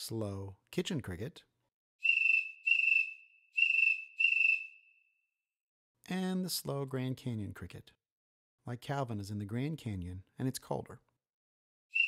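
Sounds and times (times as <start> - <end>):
cricket chirps: 2.0 - 5.0.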